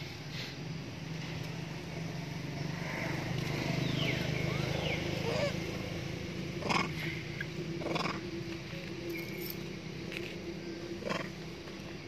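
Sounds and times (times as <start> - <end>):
steady low hum: 0.0 - 12.0
monkeys giving short calls: 6.6 - 7.0.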